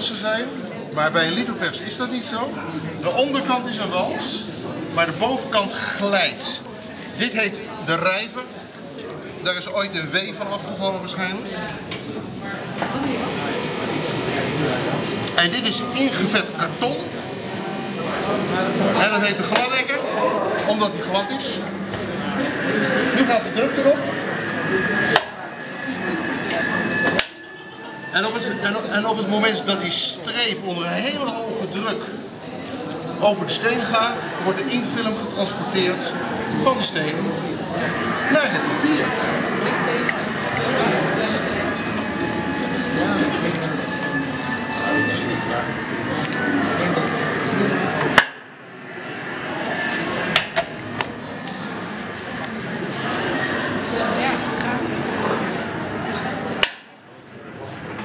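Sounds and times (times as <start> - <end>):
visitors chattering: 0.0 - 58.0.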